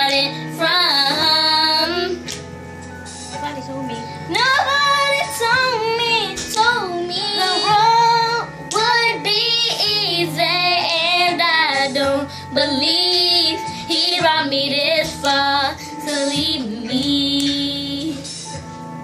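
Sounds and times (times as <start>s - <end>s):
girls singing gospel song: 0.0s - 2.4s, 4.2s - 18.6s
backing music: 0.0s - 19.0s.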